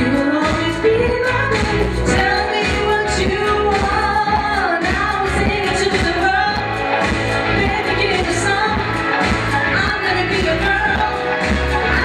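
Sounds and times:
dance-pop backing music: 0:00.0 - 0:12.0
woman singing into a microphone: 0:00.0 - 0:12.0.

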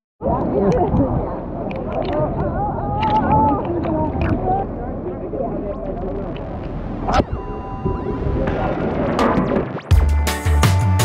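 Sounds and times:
sea water lapping and splashing: 0:00.2 - 0:05.3.

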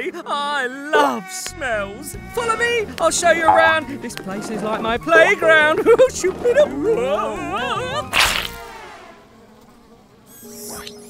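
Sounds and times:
buzz dropping in pitch: 0:07.6 - 0:09.3.

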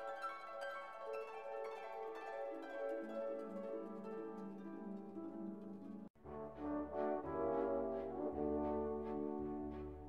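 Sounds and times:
held brass chords: 0:06.2 - 0:10.0.

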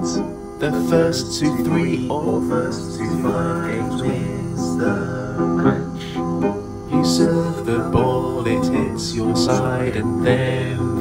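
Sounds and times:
man singing: 0:00.0 - 0:06.3, 0:06.9 - 0:11.0
piano chords: 0:00.0 - 0:11.0.

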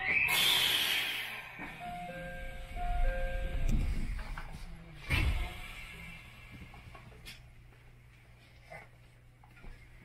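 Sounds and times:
low steady hum: 0:00.0 - 0:10.0
electronic chime: 0:01.8 - 0:03.9.

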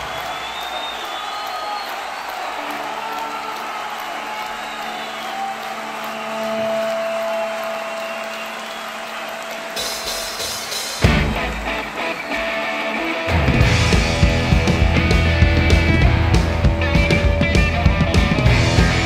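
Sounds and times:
rock band with drums: 0:04.1 - 0:19.0
amplified guitar tones: 0:11.0 - 0:19.0.

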